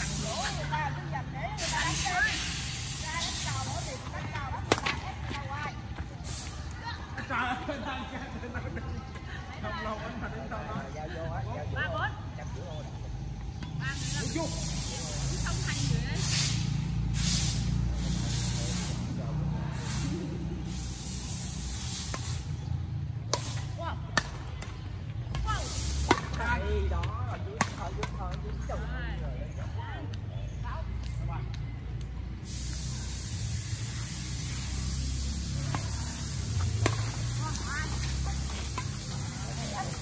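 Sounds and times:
steady hiss: 0.0s - 0.7s, 1.6s - 4.4s, 13.9s - 22.6s, 32.3s - 40.0s
racket striking shuttlecock: 36.6s - 37.2s.

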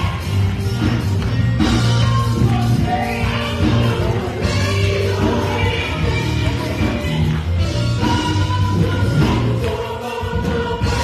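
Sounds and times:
live band playing: 0.0s - 11.0s
steady bass line: 0.0s - 11.0s
choir singing in harmony: 1.7s - 11.0s.

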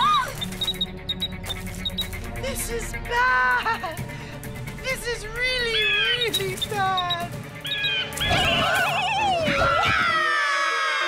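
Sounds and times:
background music: 0.0s - 11.0s
cartoon bird squawks: 5.7s - 9.9s
cartoon bird trilling cry: 5.7s - 10.0s.

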